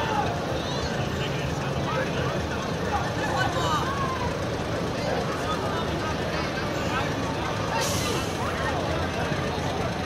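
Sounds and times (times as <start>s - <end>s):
voices: 0.0s - 10.0s
air brakes hiss: 7.8s - 8.4s.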